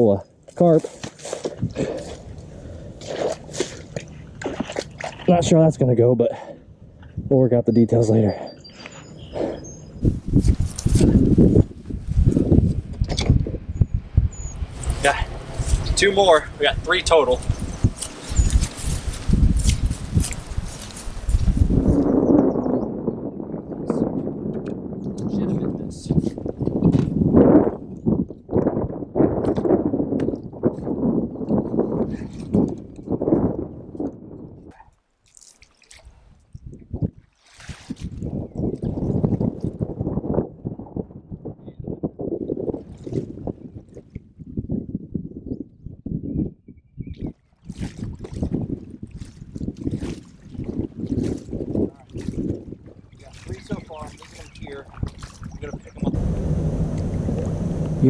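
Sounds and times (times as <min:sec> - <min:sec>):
water sloshing: 0:00.8 - 0:05.6, 0:14.6 - 0:22.0, 0:34.9 - 0:39.8, 0:47.5 - 0:58.0
paddle knocks and rumbles: 0:56.1 - 0:58.0
rushing noise: 0:56.1 - 0:58.0.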